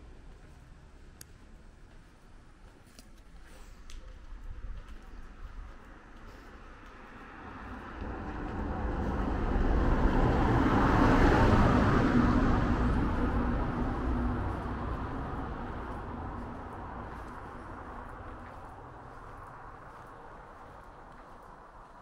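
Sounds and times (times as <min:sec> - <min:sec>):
car driving past: 0:06.4 - 0:21.5.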